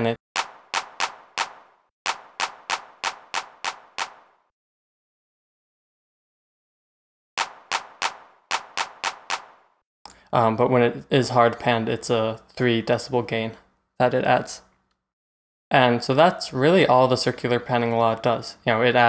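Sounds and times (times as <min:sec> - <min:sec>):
handclap sample: 0:00.4 - 0:04.3, 0:07.4 - 0:09.6.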